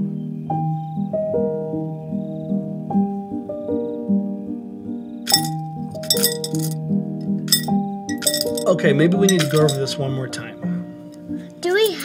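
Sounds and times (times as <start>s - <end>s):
background music with held notes: 0.0s - 12.0s
coins clinking into glass jar: 5.3s - 6.8s, 7.5s - 8.7s, 9.3s - 9.9s.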